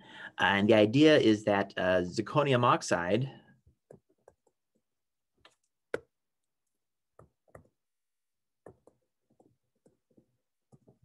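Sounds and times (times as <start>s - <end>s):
stylus tapping on tablet screen: 3.8s - 8.0s, 8.6s - 11.0s.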